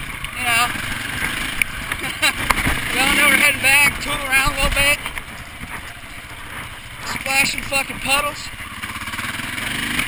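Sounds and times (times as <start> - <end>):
dirt bike engine running: 0.0 - 10.0.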